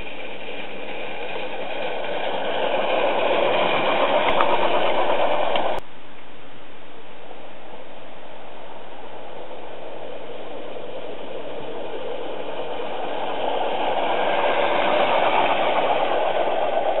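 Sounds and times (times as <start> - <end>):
steam locomotive chuffing: 0.0 - 5.8, 8.5 - 17.0.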